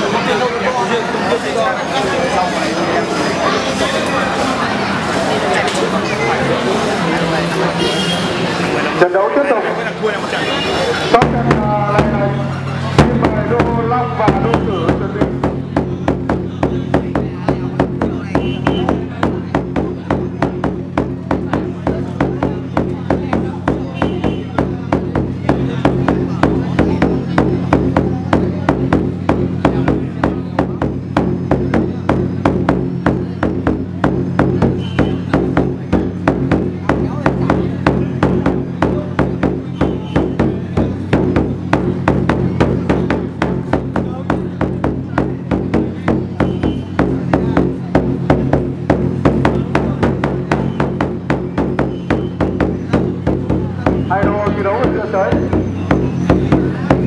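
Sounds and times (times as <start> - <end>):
fast drumming: 11.1 - 57.0.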